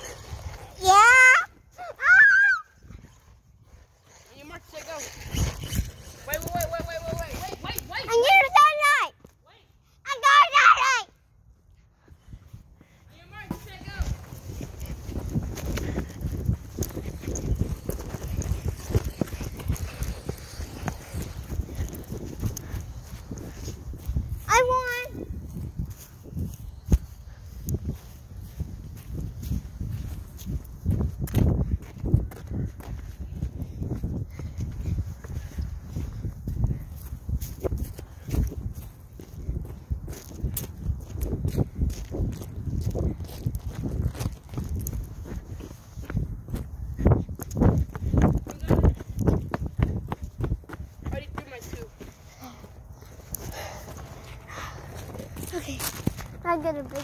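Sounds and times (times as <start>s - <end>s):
footsteps: 2.8s - 57.0s.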